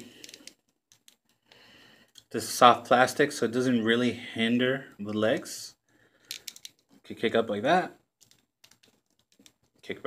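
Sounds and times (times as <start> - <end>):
action figure joints clicking: 6.2 - 6.9, 8.2 - 9.8.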